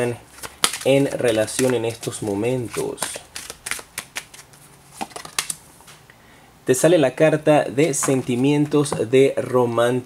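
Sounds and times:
cards snapping and clicking: 0.4 - 5.6.

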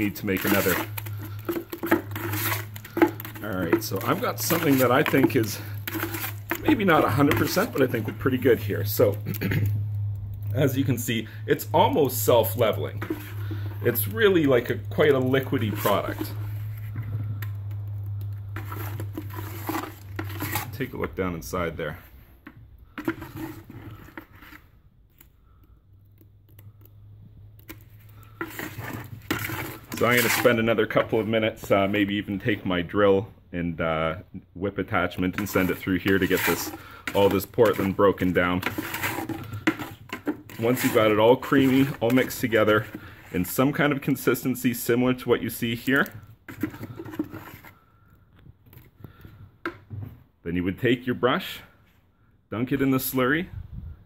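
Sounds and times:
trowel scraping plastic bucket: 0.0 - 9.7, 10.5 - 17.6, 18.3 - 22.3, 22.9 - 24.8, 27.6 - 32.6, 35.0 - 48.0.

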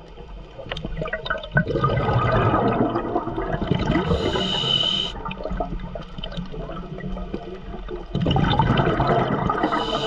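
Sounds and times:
bubbles gurgling underwater: 0.0 - 10.0
regulator breath hiss: 4.1 - 5.2, 9.6 - 10.0.

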